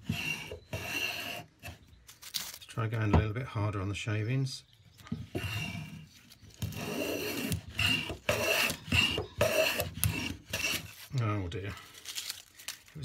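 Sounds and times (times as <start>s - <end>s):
hand plane cutting wood: 0.0s - 1.8s, 5.3s - 11.1s.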